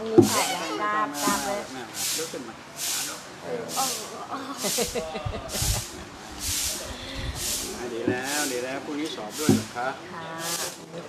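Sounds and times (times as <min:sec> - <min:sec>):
voices: 0:00.0 - 0:11.0
short sharp hissing bursts: 0:00.2 - 0:10.8.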